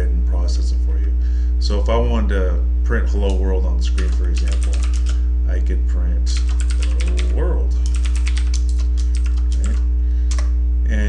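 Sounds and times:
steady low hum: 0.0 - 11.0
keyboard typing: 4.0 - 5.2, 6.4 - 9.9.

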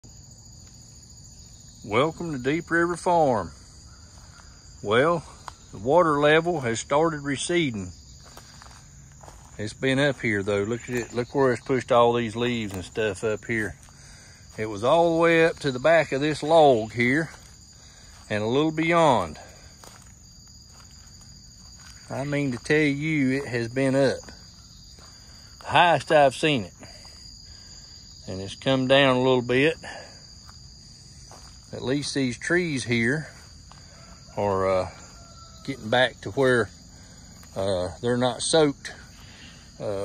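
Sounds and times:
crickets trilling: 0.0 - 40.0
high-pitched insect chorus: 0.0 - 40.0
man speaking: 1.9 - 3.6, 4.8 - 7.9, 9.6 - 13.8, 14.6 - 17.4, 18.3 - 19.5, 22.1 - 24.3, 25.6 - 27.0, 28.2 - 30.1, 31.6 - 33.4, 34.4 - 35.0, 35.6 - 36.7, 37.5 - 40.0
footsteps on leaf litter: 7.7 - 27.9, 30.2 - 40.0.

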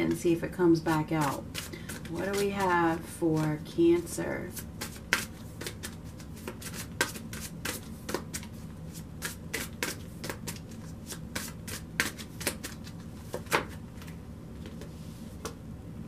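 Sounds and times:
cards being shuffled: 0.9 - 2.8, 4.6 - 15.6.

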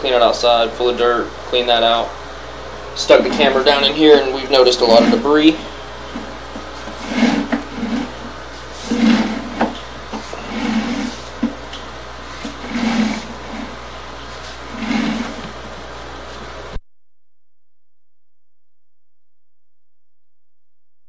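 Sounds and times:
cable scraping through drain: 3.0 - 11.6, 12.3 - 15.7.

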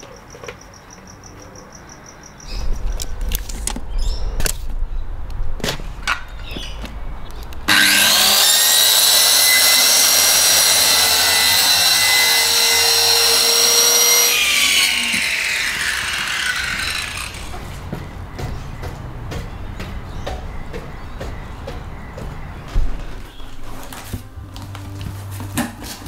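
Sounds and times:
electric power saw running: 7.7 - 17.7.

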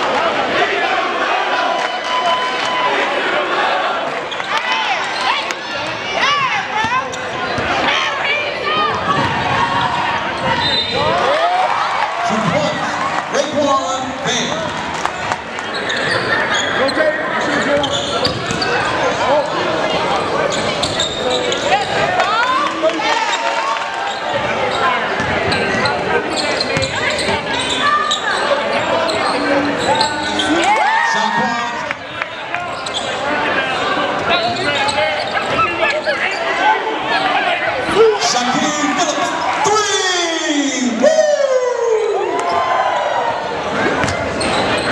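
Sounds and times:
echoing crowd and player voices: 0.0 - 44.9.

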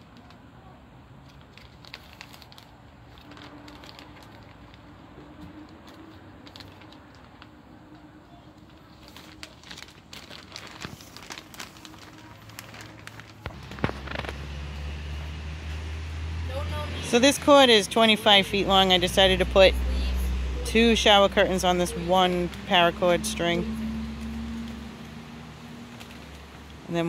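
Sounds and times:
plastic curtain crinkling: 1.2 - 15.9, 21.0 - 27.0.

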